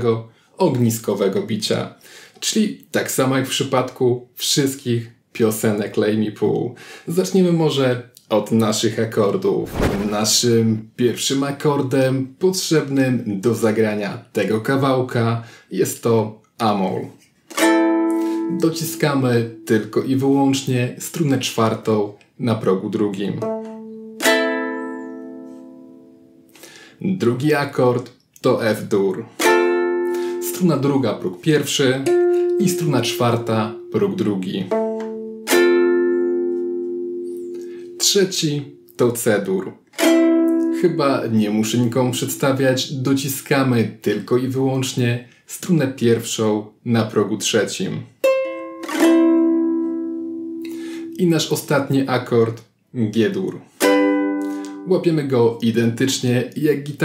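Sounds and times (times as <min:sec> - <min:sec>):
ukulele chord strummed: 0:17.6 - 0:18.5, 0:23.4 - 0:26.4, 0:29.4 - 0:30.4, 0:32.0 - 0:38.9, 0:40.0 - 0:40.8, 0:48.2 - 0:51.2, 0:53.8 - 0:54.8
ukulele chord ringing: 0:35.0 - 0:38.1, 0:48.2 - 0:51.1, 0:53.8 - 0:54.8.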